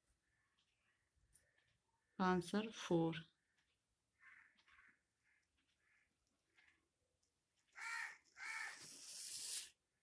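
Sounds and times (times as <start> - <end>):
voice: 2.2 - 3.4
harsh animal calls: 7.7 - 9.1.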